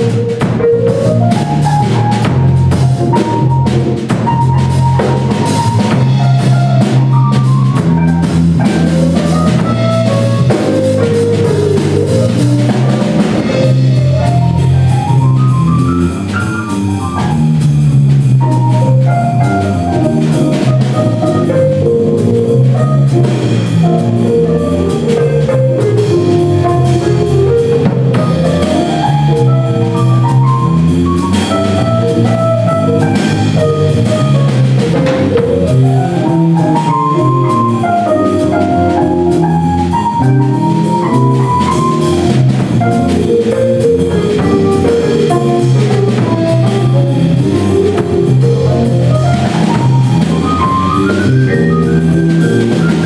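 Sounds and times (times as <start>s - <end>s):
drum kit groove: 0.0s - 53.0s
electric keyboard: 0.0s - 53.0s.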